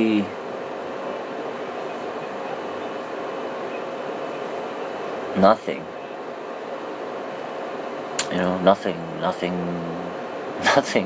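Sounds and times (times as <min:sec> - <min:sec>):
faint constant hum: 0:00.0 - 0:11.0
room hiss: 0:00.0 - 0:11.0.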